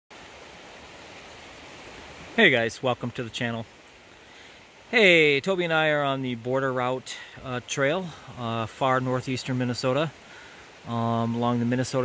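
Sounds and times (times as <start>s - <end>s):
outdoor rushing hiss: 0.1s - 5.5s, 9.5s - 12.0s.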